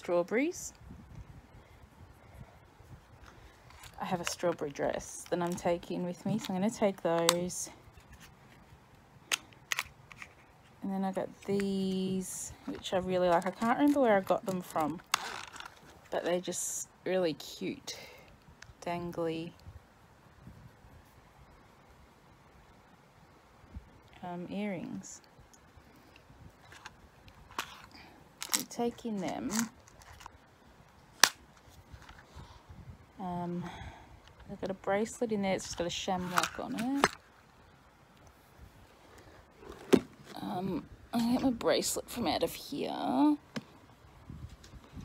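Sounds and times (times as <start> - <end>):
faint handling sounds: 0.7 - 16.7, 25.2 - 33.6, 34.2 - 42.4.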